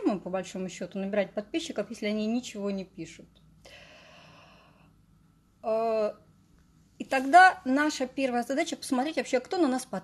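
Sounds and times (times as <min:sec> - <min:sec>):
woman's breathy exhale: 0:03.6 - 0:04.9.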